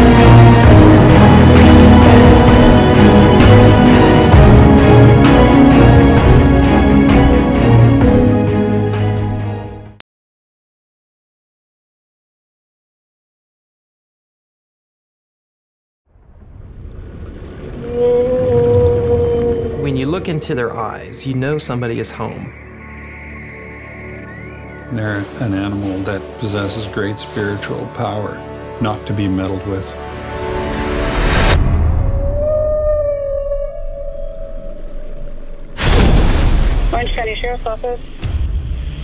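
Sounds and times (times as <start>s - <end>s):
low rumble: 16.1s - 21.5s
killer whale call: 17.3s - 21.1s, 32.0s - 35.6s.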